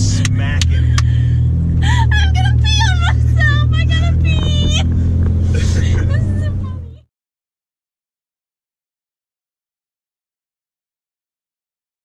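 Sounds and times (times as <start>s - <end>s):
diesel engine drone: 0.0s - 7.1s.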